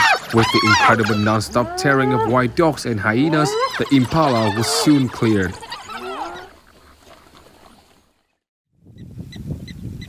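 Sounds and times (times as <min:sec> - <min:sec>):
wild dogs at a kill: 0:00.0 - 0:08.2
outdoor ambience: 0:00.0 - 0:08.4.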